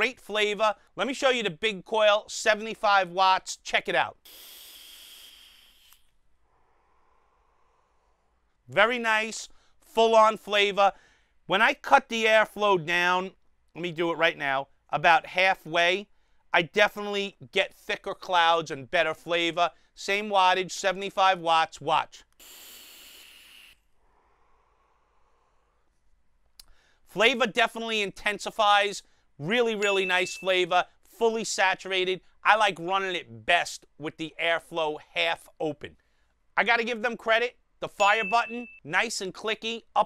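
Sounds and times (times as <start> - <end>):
hiss of vapor being drawn: 4.2 - 8.2, 22.4 - 23.9
soft hiss of exhaling: 4.2 - 8.4, 22.4 - 25.9.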